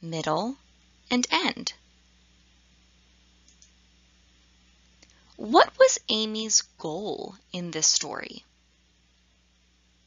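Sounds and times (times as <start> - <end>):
faint clicks: 3.4 - 3.8.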